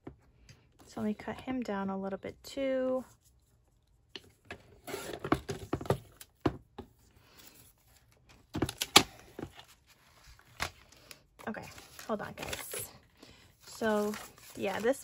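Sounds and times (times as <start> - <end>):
paper handling: 7.4 - 13.0, 13.6 - 15.0.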